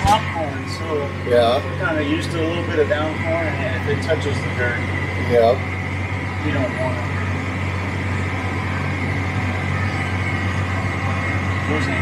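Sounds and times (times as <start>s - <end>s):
high whine: 0.0s - 12.0s
tractor engine drone: 0.0s - 12.0s.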